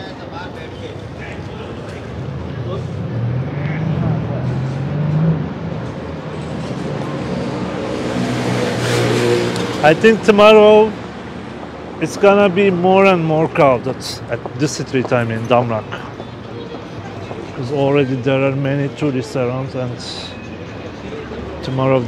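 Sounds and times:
vehicle tyre noise: 0:00.0 - 0:19.1
murmur of passers-by: 0:00.0 - 0:22.0
traffic passing: 0:00.0 - 0:22.0.

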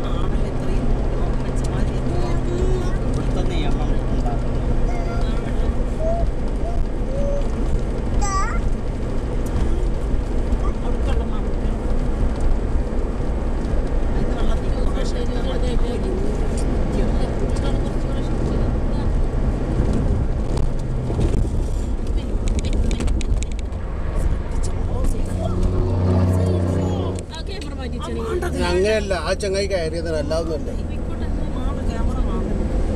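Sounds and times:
car cabin road and engine noise: 0:00.0 - 0:32.9.

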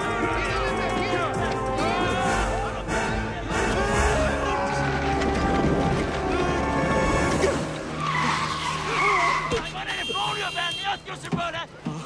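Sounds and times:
people shouting: 0:03.6 - 0:05.6
long skidding screech: 0:07.4 - 0:09.6.

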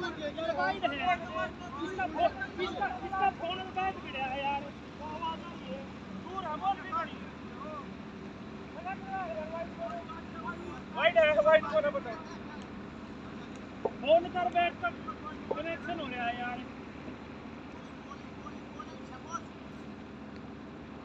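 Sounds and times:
players shouting: 0:00.0 - 0:17.0.

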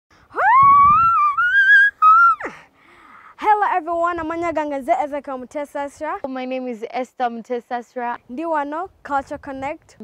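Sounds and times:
child speaking: 0:03.4 - 0:07.0.

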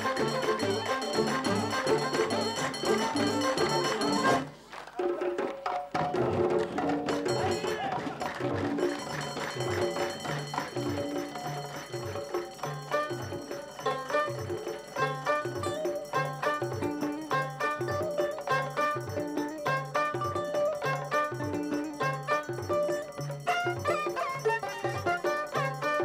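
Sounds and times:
hand-clapping: 0:00.0 - 0:15.2
folk ensemble playing a beat: 0:00.0 - 0:26.0.

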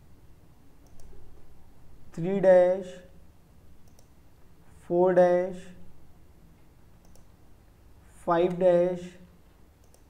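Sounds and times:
low background hiss: 0:00.0 - 0:10.0
mouse and keyboard clicks: 0:03.8 - 0:04.1, 0:07.0 - 0:07.3, 0:09.8 - 0:10.0.

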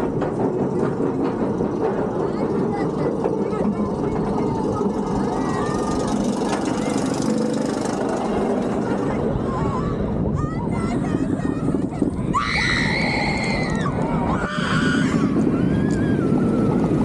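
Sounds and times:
roller coaster rumble and rattle: 0:00.0 - 0:17.0.

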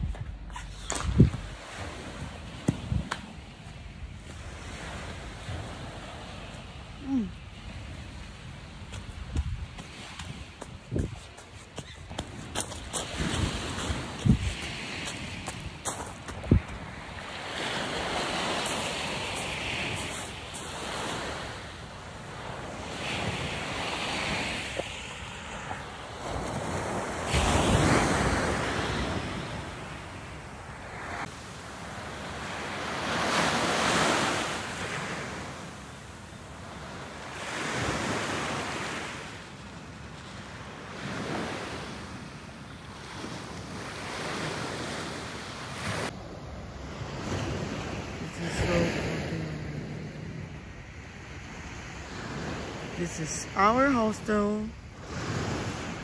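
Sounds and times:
wind on microphone: 0:00.0 - 0:21.3
sea waves breaking: 0:00.0 - 0:46.2, 0:46.8 - 0:56.0.

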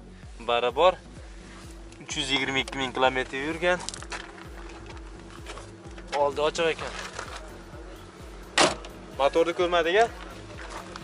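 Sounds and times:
music with steady beat: 0:00.0 - 0:11.0
car door shutting: 0:08.5 - 0:09.0.

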